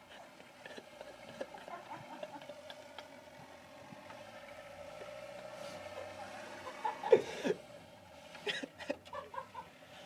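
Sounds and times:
van engine at high revs: 0:00.0 - 0:10.0
wheels spinning in snow: 0:00.0 - 0:10.0.

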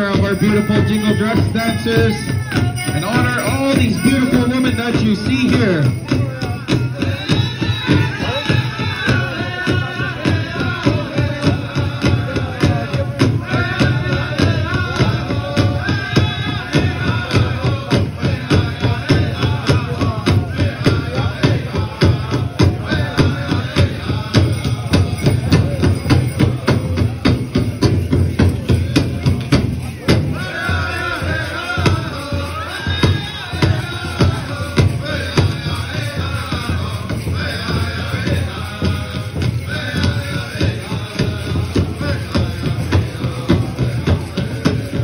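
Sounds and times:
big drum beat: 0:00.0 - 0:45.0
group singing: 0:00.0 - 0:45.0.

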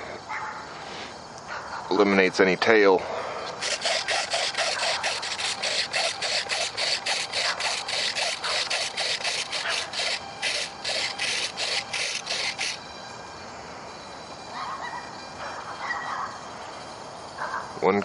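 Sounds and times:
servos buzzing: 0:03.5 - 0:13.0.

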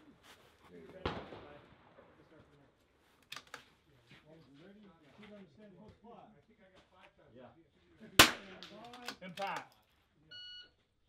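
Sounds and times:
rifle shot: 0:01.0 - 0:02.0, 0:08.2 - 0:08.8.

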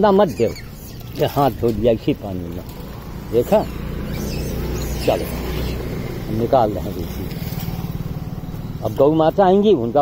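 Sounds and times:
vehicle engine idling: 0:00.4 - 0:10.0.

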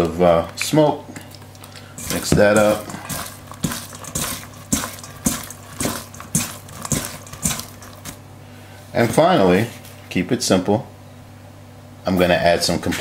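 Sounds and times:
cabbage tossed in metal bowl: 0:01.4 - 0:08.2.

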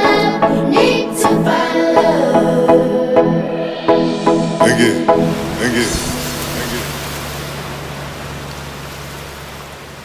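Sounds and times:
sea surf on a beach: 0:04.6 - 0:10.0
low steady hum: 0:05.0 - 0:10.0.

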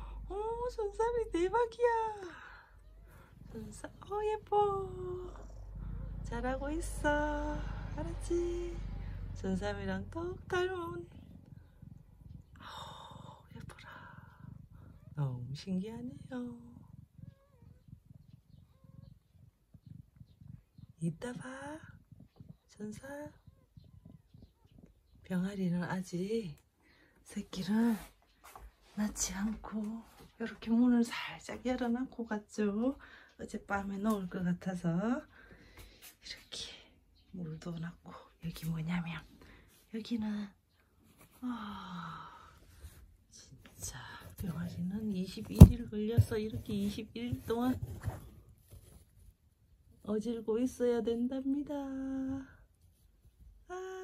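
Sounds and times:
cat purring: 0:00.0 - 0:28.3.

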